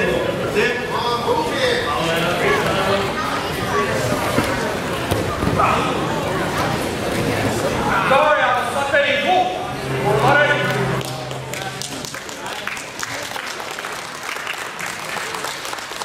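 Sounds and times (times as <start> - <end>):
crowd noise echoing: 0.0 - 16.0
scattered clapping: 10.7 - 16.0.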